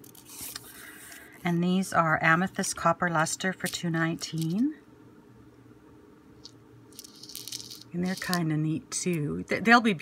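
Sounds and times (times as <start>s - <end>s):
glass beads rattling in plastic box: 6.9s - 8.4s.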